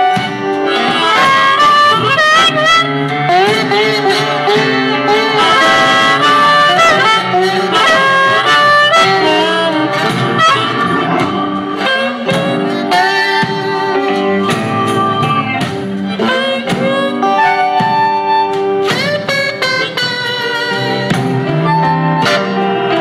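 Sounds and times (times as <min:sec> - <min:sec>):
acoustic guitar strummed and picked: 0:00.0 - 0:23.0
blues harmonica solo: 0:00.0 - 0:23.0.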